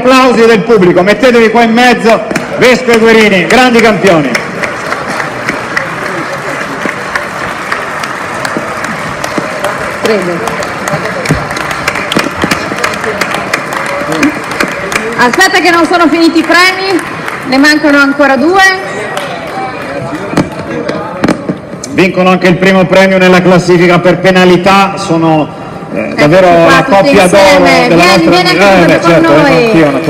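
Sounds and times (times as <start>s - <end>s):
audience applauding: 2.3s - 21.0s.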